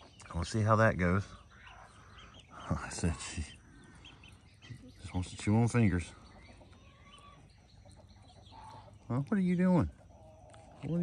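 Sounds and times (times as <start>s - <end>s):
faint chicken calls: 0.0s - 11.0s.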